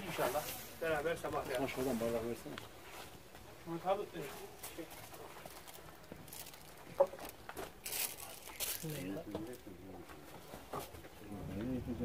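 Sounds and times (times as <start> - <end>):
low voices murmuring: 0.0 - 12.0
plastic bags rustling: 4.2 - 9.8.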